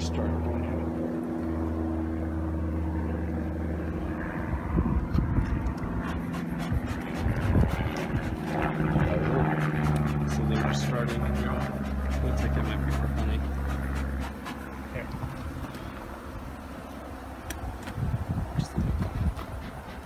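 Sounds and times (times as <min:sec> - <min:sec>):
bee smoker puffs: 0:06.0 - 0:08.8, 0:09.6 - 0:16.7, 0:18.6 - 0:20.0
honeybee colony humming: 0:06.0 - 0:17.8.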